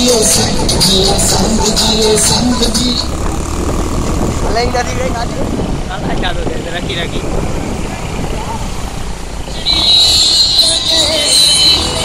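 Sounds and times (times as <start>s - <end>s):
crowd voices: 0.0s - 12.0s
vehicle engines rumbling: 0.0s - 12.0s
loud high-pitched tone: 9.5s - 12.0s.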